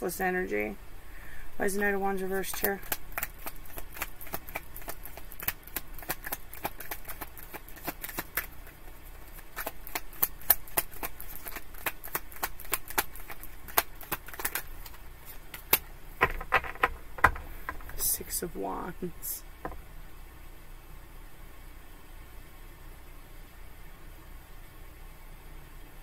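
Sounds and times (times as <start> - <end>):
cards being shuffled: 2.3 - 18.0.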